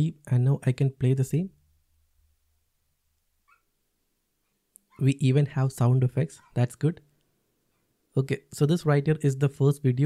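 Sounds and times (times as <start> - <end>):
faint puppy whine: 3.4 - 3.7.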